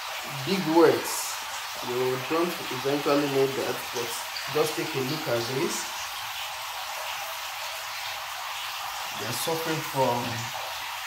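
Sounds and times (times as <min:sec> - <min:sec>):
running water hiss: 0:00.0 - 0:11.0.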